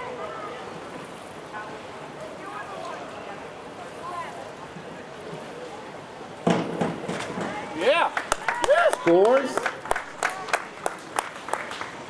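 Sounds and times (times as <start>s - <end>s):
onlookers shouting and cheering: 7.4s - 11.1s.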